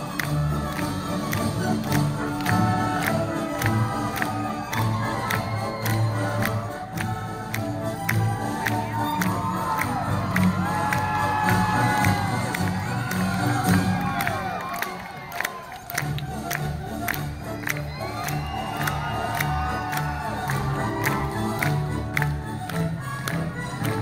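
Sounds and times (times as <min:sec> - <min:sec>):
rhythmic clapping: 0:00.0 - 0:24.0
crowd cheering and whooping: 0:02.7 - 0:06.9, 0:08.2 - 0:16.2, 0:17.3 - 0:21.9.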